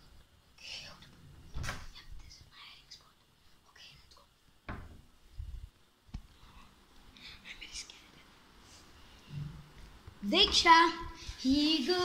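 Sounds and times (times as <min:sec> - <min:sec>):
faint whispering: 0:00.6 - 0:04.4, 0:06.4 - 0:08.4.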